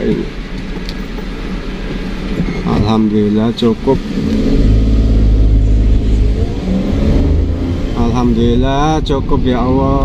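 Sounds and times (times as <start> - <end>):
truck diesel engine revving: 3.2 - 9.8.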